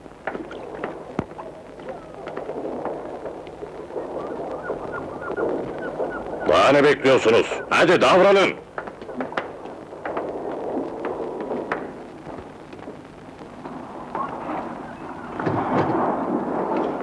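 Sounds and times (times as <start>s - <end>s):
rumbling background noise: 0.0s - 17.0s.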